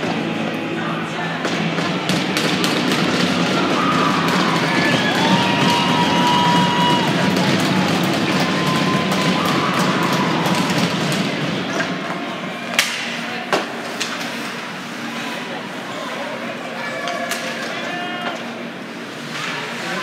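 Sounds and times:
crowd and bench noise: 0.0s - 20.0s
hockey sticks and puck clacking: 1.4s - 14.9s, 17.0s - 20.0s.

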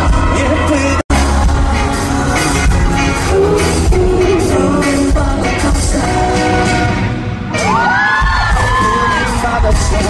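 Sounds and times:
man singing: 0.0s - 7.3s, 8.5s - 10.0s
live pop-rock band: 0.0s - 10.0s.

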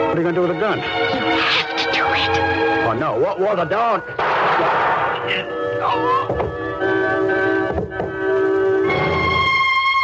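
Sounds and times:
gunshot: 4.2s - 5.2s
classical music: 5.2s - 10.0s.

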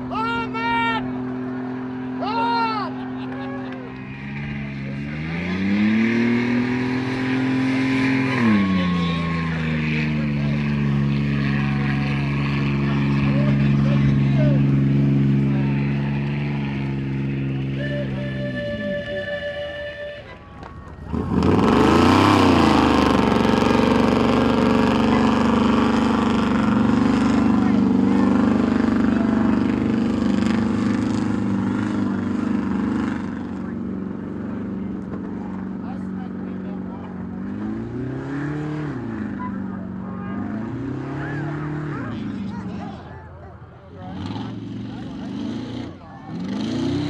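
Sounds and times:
off-road vehicle engine revving: 0.0s - 47.0s.

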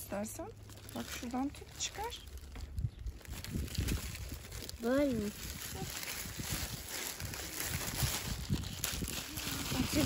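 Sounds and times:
plastic bag rustling: 0.0s - 10.0s
dry stems brushing: 0.1s - 10.0s.

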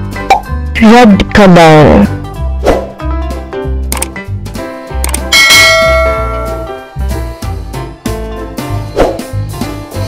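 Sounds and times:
light background music: 0.0s - 10.0s
bright bell chime: 5.4s - 6.8s.

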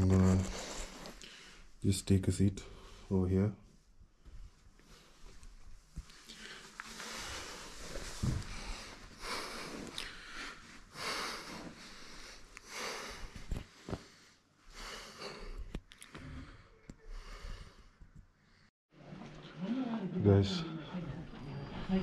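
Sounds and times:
man breathing deeply: 6.1s - 18.7s.

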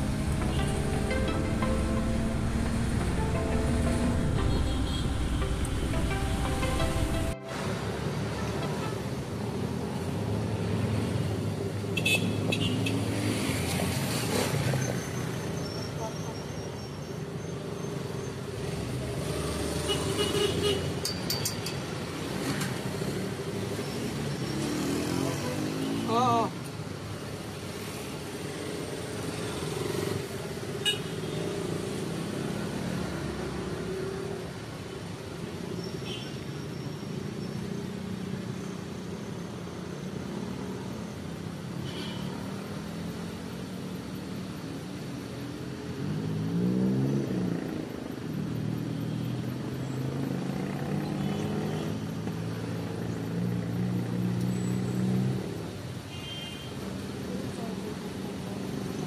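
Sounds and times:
vehicle engine running: 0.0s - 7.3s
road noise: 0.0s - 59.0s.

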